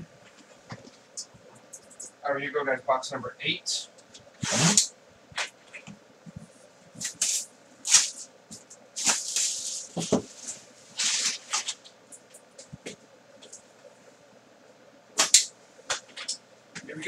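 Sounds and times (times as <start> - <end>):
plastic shrink wrap tearing: 9.0 - 10.1, 11.0 - 11.9.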